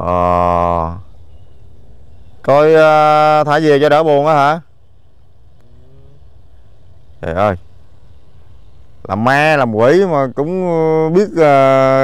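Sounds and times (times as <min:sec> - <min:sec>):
distant motor rumbling: 0:00.0 - 0:12.0.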